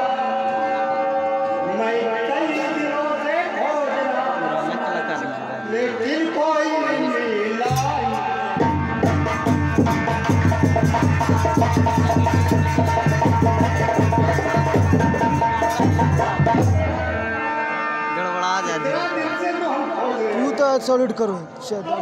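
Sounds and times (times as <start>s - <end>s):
fast dense drumming: 8.6s - 16.9s.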